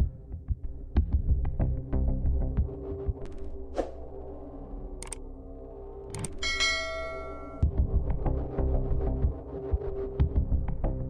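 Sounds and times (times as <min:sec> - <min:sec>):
low music drone: 0:00.0 - 0:11.0
bright bell ring: 0:06.4 - 0:07.7.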